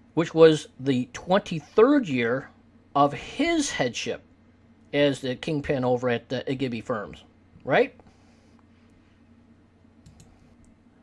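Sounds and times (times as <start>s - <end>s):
faint low hum: 0.0s - 11.0s
soft clicks: 10.0s - 10.8s.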